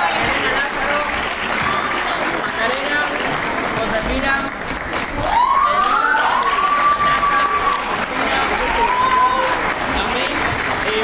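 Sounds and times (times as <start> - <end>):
audience applauding: 0.0 - 11.0
rising cheer: 5.1 - 10.0.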